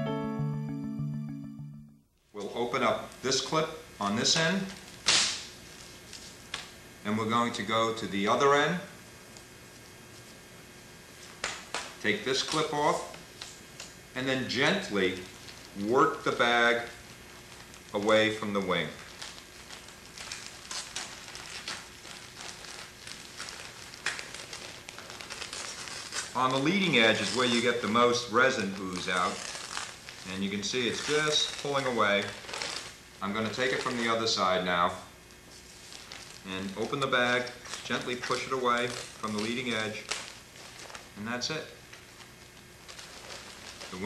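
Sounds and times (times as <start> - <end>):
plastic film crinkling: 14.6 - 34.4, 35.3 - 44.0.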